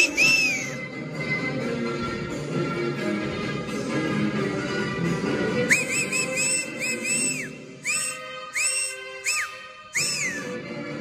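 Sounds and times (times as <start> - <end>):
person whistling: 0.0 - 0.8, 5.7 - 10.6
recorded folk music: 0.0 - 11.0.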